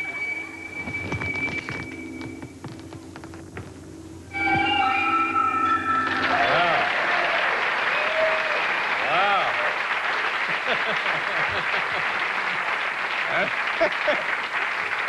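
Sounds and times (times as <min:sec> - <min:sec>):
audience applauding: 0:06.0 - 0:15.0.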